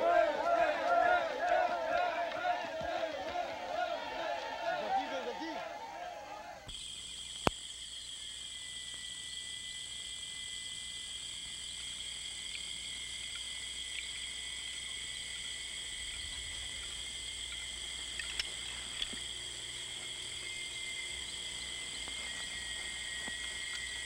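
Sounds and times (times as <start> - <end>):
insects chirping: 0.0 - 24.0.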